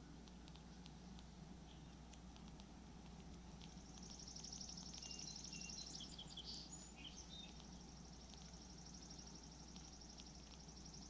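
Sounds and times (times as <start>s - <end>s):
birds chirping and whistling: 3.9s - 11.0s.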